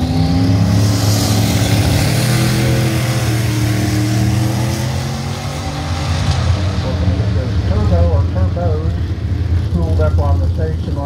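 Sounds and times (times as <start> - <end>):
car engine accelerating hard: 0.0 - 11.0.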